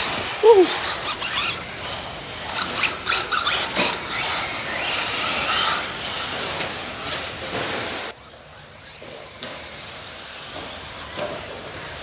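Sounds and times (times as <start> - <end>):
rc buggy motor whine: 0.0 - 12.0.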